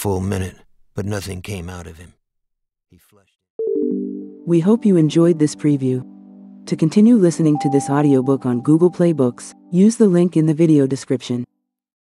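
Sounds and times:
electronic chime: 7.4 - 9.4.

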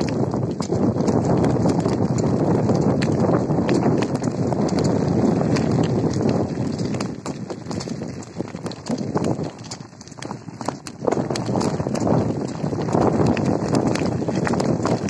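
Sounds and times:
tyres rolling over gravel: 0.0 - 15.0.

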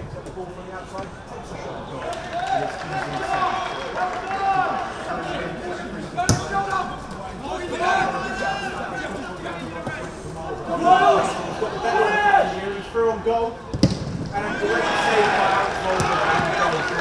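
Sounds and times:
players shouting: 1.2 - 17.0
boot kicking ball: 13.7 - 14.3.

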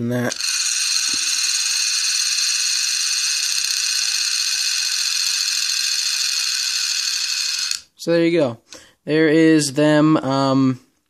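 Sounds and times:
spinning balls whirring on glass: 0.3 - 7.9.

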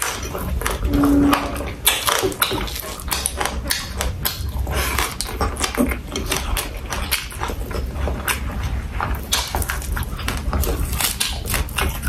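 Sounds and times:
chewing and crunching: 0.0 - 12.0.

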